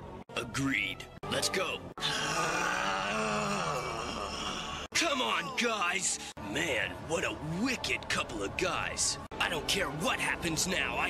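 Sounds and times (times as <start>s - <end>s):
man groaning: 2.0s - 5.9s.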